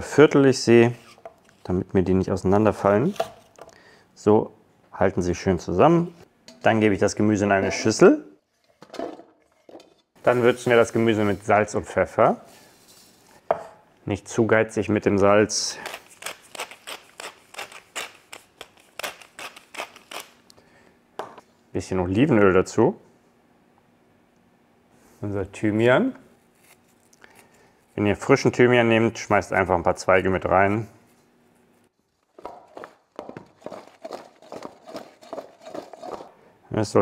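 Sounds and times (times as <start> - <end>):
pepper mill grinding: 15.8 - 20.4, 32.7 - 36.3.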